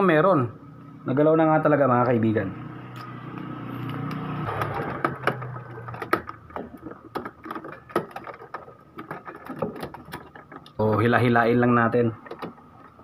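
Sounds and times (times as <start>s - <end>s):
plastic parts clicking and knocking: 3.8s - 13.0s.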